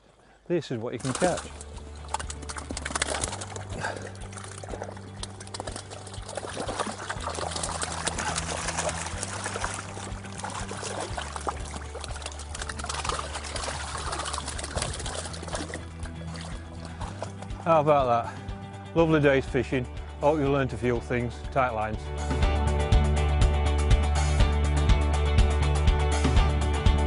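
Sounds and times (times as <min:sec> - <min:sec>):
water splashing and trickling: 0:00.2 - 0:21.1
background music with low chords: 0:00.8 - 0:27.0.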